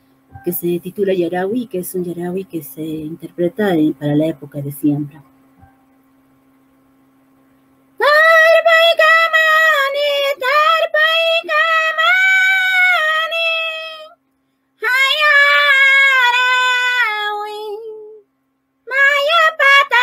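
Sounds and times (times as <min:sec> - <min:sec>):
woman singing a cappella: 0:00.4 - 0:05.2, 0:08.0 - 0:14.2, 0:14.8 - 0:18.2, 0:18.8 - 0:20.0.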